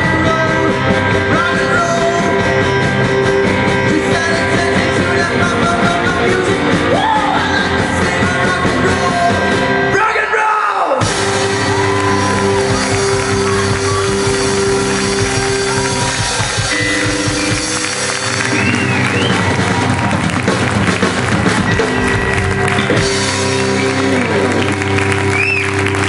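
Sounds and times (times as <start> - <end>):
rock band sustained chords: 0.0 - 10.2, 10.9 - 26.0
audience cheering and applauding: 10.9 - 26.0.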